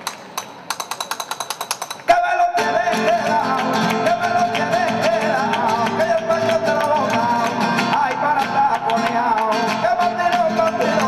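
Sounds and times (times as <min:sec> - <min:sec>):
dance shoes tapping on stage: 0:00.0 - 0:11.0.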